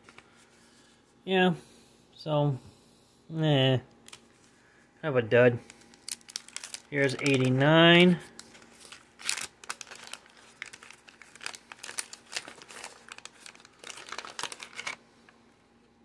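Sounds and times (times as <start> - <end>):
paper wrapper crinkling and tearing: 5.6 - 15.0.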